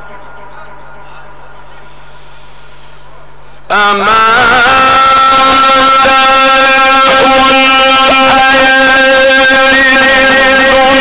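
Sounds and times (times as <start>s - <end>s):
man singing religious chant: 3.7s - 11.0s.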